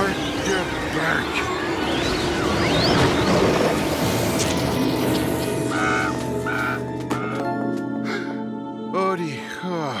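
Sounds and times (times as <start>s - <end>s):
orchestral music: 0.0s - 10.0s.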